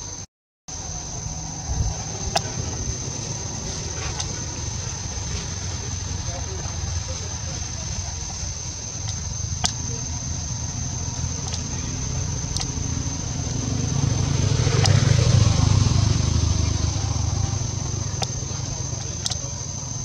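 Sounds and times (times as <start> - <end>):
thin high whine: 0.0 - 20.0
motor vehicle passing: 0.7 - 20.0
faint clicks: 2.2 - 15.5, 16.8 - 20.0.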